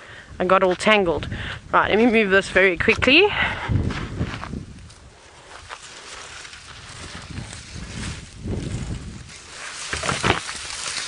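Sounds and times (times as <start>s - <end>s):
footsteps in dry grass: 2.1s - 11.0s
branches dragged scraping: 3.9s - 11.0s.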